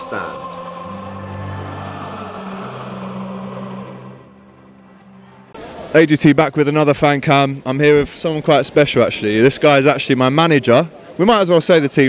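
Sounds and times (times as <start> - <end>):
noisy wash: 0.0 - 10.1.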